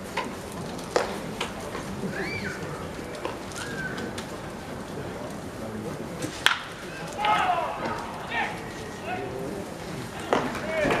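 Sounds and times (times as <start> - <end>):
voices shouting: 7.1 - 9.3.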